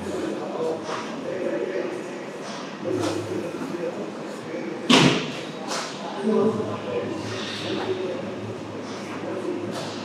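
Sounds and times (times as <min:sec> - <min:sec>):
murmur of background voices: 0:00.0 - 0:10.0.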